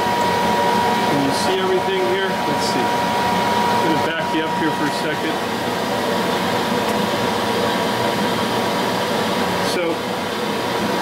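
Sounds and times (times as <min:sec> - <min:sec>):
steady machine drone: 0:00.0 - 0:11.0.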